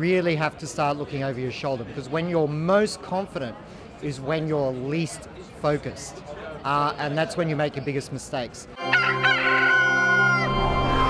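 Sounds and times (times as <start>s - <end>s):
rooster crowing: 8.8s - 11.0s.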